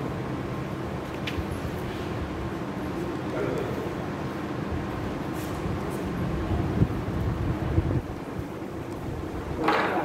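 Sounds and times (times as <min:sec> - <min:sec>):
wind noise on microphone: 0:04.7 - 0:09.7.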